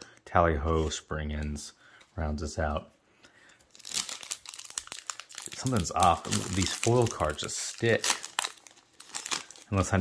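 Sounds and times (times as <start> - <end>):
foil wrapper tearing and crinkling: 3.7 - 10.0.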